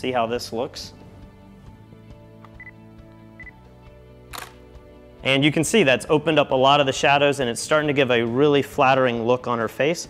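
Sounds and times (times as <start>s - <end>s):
quiet background music: 0.0s - 10.0s
camera shutter click: 4.3s - 4.6s.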